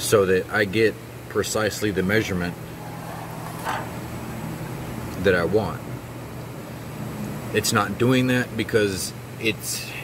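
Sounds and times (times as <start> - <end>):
low machinery hum: 0.0 - 9.9.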